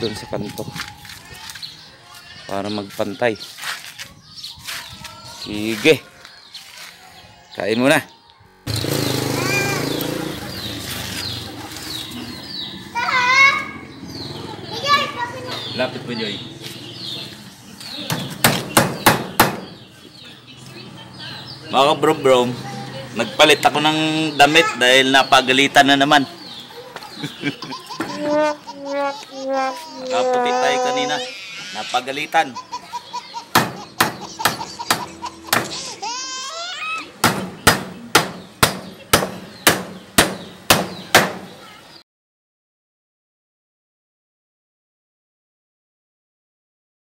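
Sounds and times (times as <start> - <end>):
hammer striking wood: 18.1 - 19.8, 33.5 - 35.8, 37.2 - 41.5.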